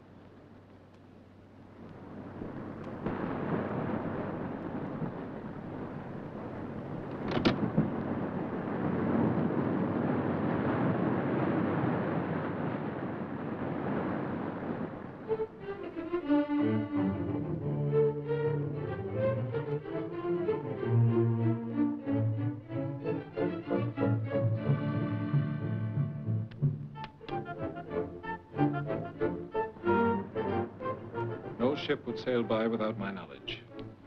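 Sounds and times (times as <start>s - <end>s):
surf breaking over rocks: 1.8s - 16.0s
orchestral strings: 15.2s - 34.0s.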